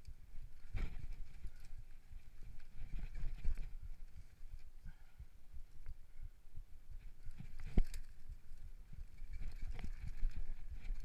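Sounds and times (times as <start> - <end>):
bike frame rattling: 0.0 - 4.8, 7.0 - 11.0.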